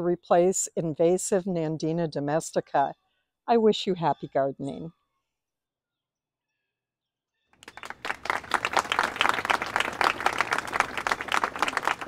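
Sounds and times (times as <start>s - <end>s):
crowd applauding: 7.6s - 12.0s.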